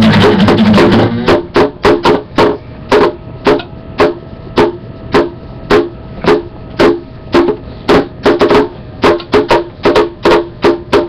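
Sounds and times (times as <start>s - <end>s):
percussion hits with ringing: 0.0s - 11.0s.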